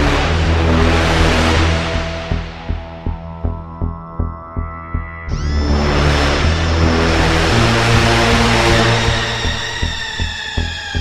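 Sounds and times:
low bass synth notes: 0:00.0 - 0:11.0
rushing synth noise wash: 0:00.0 - 0:11.0.

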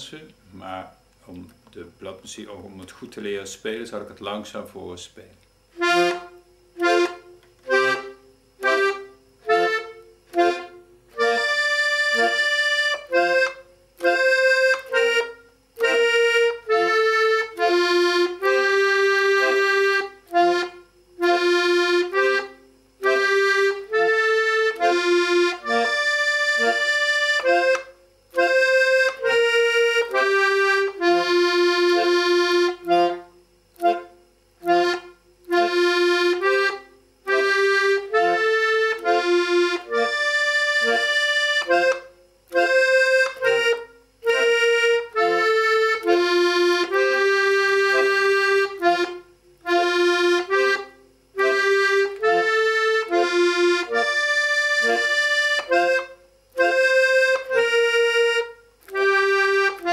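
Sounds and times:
piano accordion dance melody: 0:05.8 - 0:59.9.

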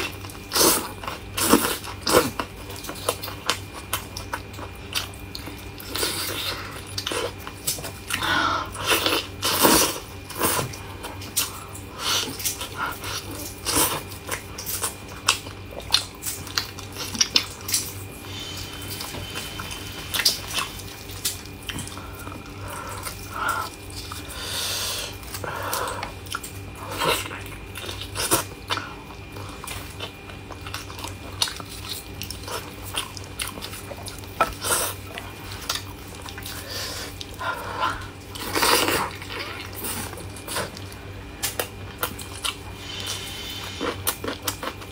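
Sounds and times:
person chewing meat: 0:00.0 - 0:44.9.

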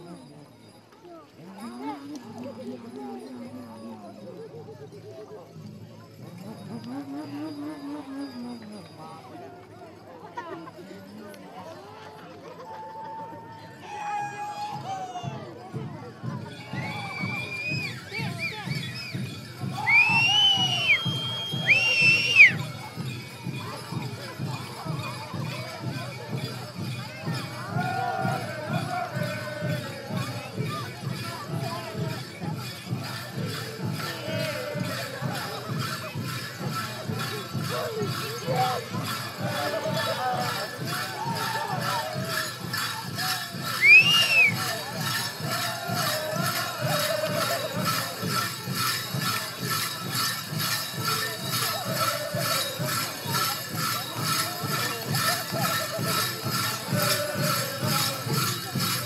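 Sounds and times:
metal ornaments jingling: 0:00.0 - 0:11.9, 0:14.6 - 0:59.0
steady drumbeat: 0:15.8 - 0:59.0
men's chorus chanting: 0:27.4 - 0:30.9, 0:33.4 - 0:35.8, 0:37.2 - 0:42.4, 0:44.5 - 0:48.5, 0:51.5 - 0:53.8, 0:54.4 - 0:59.0
people singing: 0:27.5 - 0:31.8, 0:33.8 - 0:35.8, 0:37.7 - 0:42.5, 0:43.2 - 0:48.5, 0:51.6 - 0:53.6, 0:54.4 - 0:59.0.

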